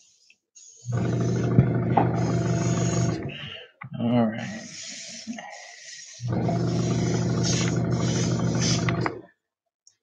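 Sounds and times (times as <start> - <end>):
air compressor motor humming: 0.9 - 3.4, 6.2 - 9.3
air hissing: 4.6 - 9.2.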